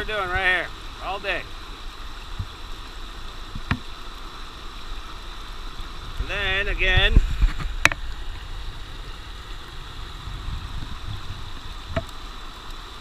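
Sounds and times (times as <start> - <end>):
river water rushing: 0.0 - 13.0.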